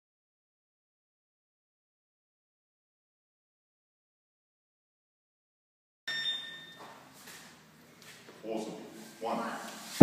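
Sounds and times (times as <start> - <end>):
short high ringing tone: 6.1 - 6.8
gym room sound: 6.1 - 10.0.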